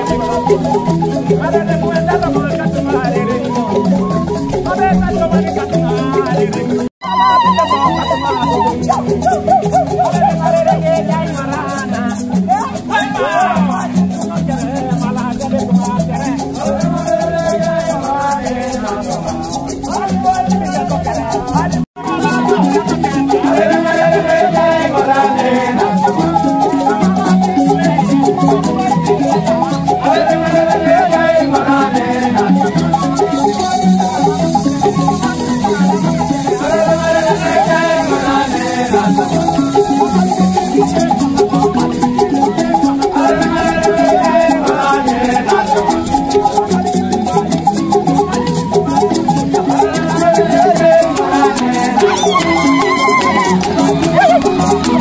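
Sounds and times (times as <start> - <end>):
thumb pianos: 0.0 - 55.0
voices singing: 0.0 - 55.0.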